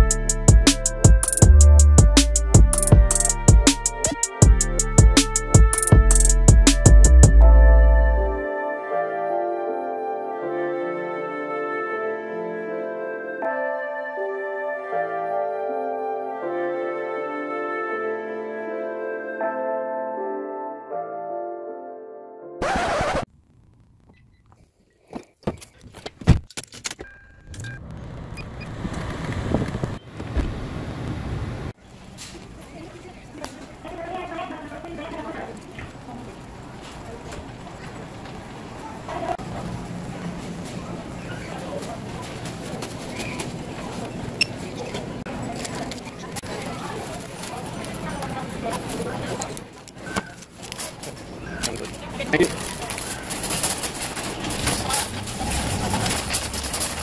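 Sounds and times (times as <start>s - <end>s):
shopping cart rattling: 32.1s - 49.6s, 50.6s - 57.0s.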